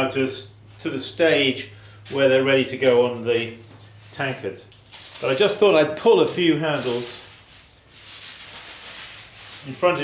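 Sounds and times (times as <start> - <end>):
plastic bag rustling: 4.8 - 10.0.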